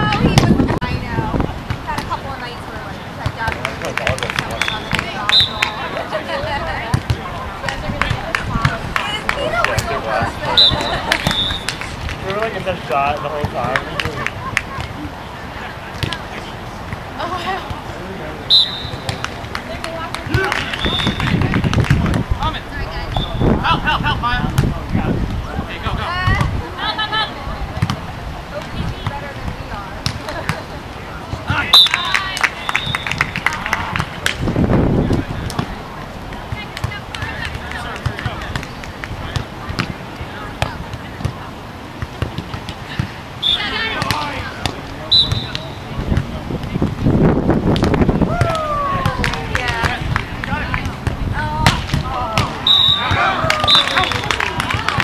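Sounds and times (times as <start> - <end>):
players shouting: 3.3 - 16.5, 17.1 - 21.5, 29.2 - 34.4, 42.9 - 46.0, 48.2 - 55.0
volleyball being hit: 18.6 - 22.2, 43.9 - 46.8, 47.7 - 55.0
long falling shout: 48.3 - 49.2.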